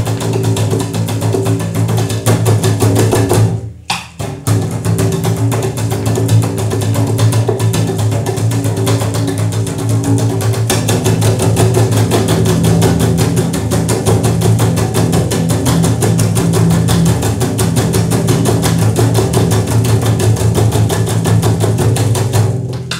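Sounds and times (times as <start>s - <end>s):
double bass percussive strokes: 0.0s - 22.9s.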